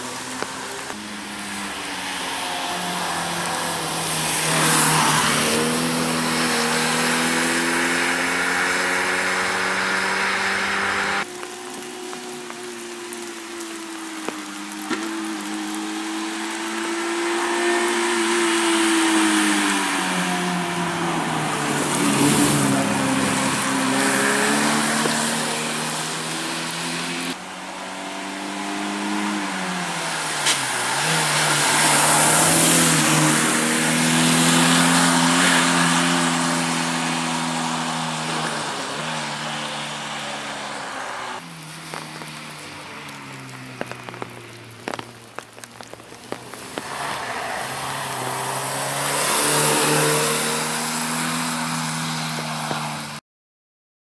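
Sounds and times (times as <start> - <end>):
car engine revving hard: 3.2 - 11.3, 46.8 - 53.0.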